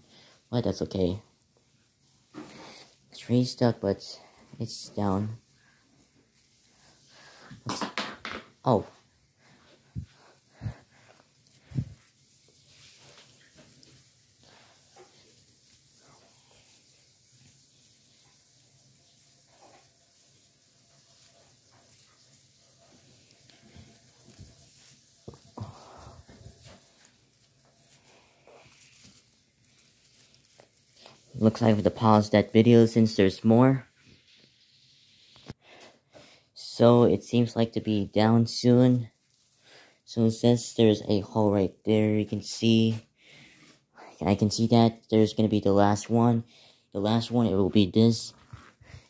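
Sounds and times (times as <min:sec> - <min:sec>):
rustling of artificial tree branches: 0:00.0 - 0:49.0.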